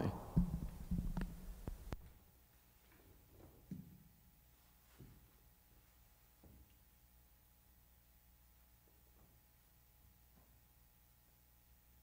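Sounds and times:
microphone knocking on piano: 0.0s - 2.0s.

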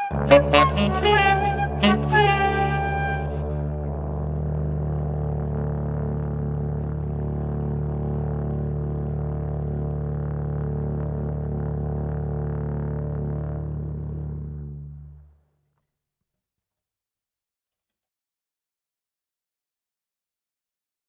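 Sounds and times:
euphonium low drone note: 0.0s - 15.2s.

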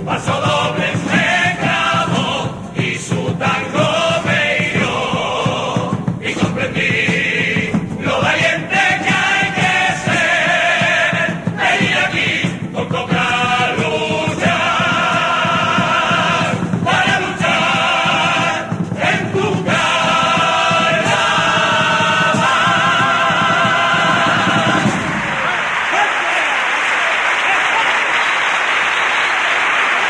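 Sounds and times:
chorus singing in harmony: 0.0s - 26.1s.

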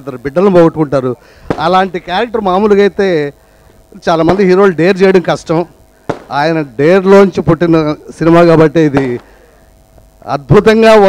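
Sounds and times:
man speaking over pa system: 0.0s - 9.4s, 10.2s - 11.0s.

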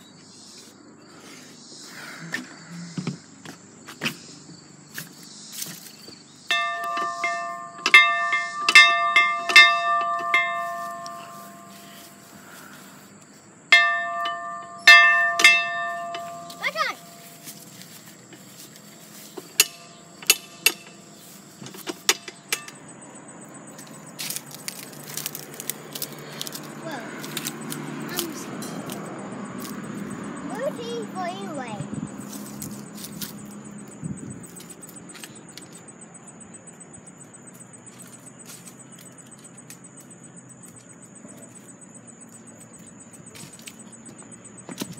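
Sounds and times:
large metal bell clanging: 6.5s - 11.8s, 13.7s - 17.5s.

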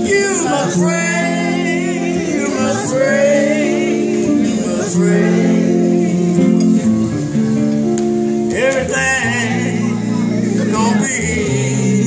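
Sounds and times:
man singing gospel song: 0.0s - 6.6s, 8.5s - 12.0s
electric guitar chords: 0.0s - 12.0s.

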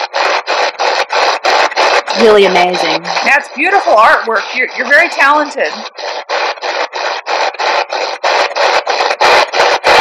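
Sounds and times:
choppy radio static bursts: 0.0s - 10.0s.

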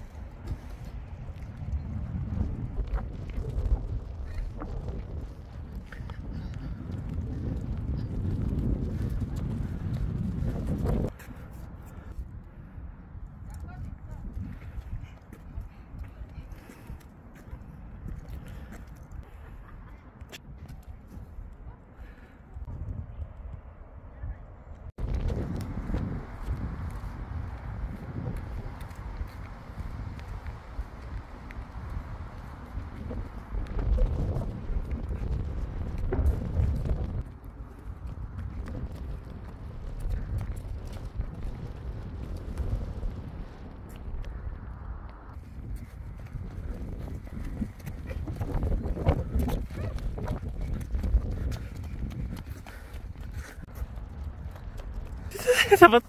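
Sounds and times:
running footsteps on pavement: 0.0s - 23.6s, 25.0s - 56.0s
wind buffeting microphone: 0.0s - 56.0s.

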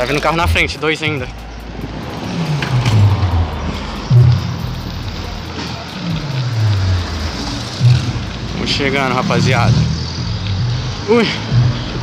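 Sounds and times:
cars driving past: 0.0s - 12.0s.

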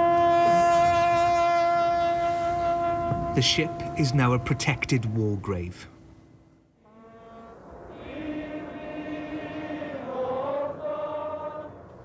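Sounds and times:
bugle holding long note: 0.0s - 5.0s.

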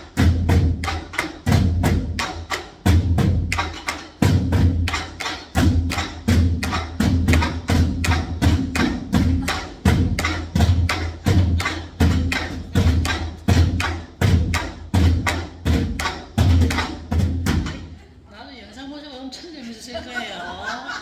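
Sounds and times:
barrel drums played with sticks: 0.0s - 17.9s
people chuckling: 19.9s - 21.0s.

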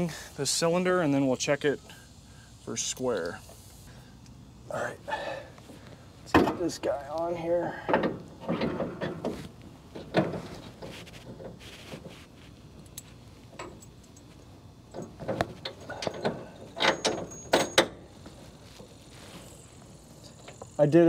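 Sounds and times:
metal clunks and scrapes: 7.8s - 12.5s, 14.9s - 19.0s.

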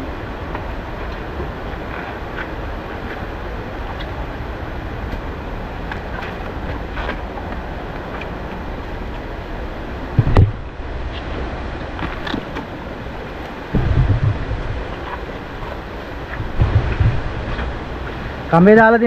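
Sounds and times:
water rushing: 0.0s - 19.0s.

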